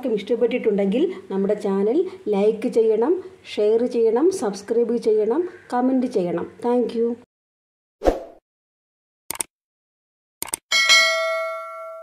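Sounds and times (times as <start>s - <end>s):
double mouse click: 10.4s - 10.6s
notification bell ding: 10.7s - 12.0s.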